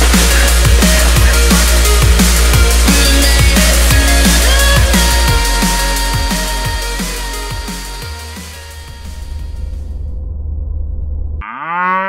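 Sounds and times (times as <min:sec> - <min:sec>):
deep bass note: 0:08.8 - 0:11.4
cow mooing: 0:11.4 - 0:12.0.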